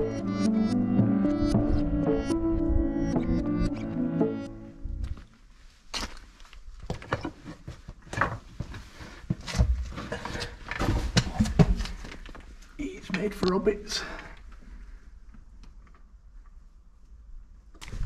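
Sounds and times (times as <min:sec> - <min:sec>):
background music: 0:00.0 - 0:05.2.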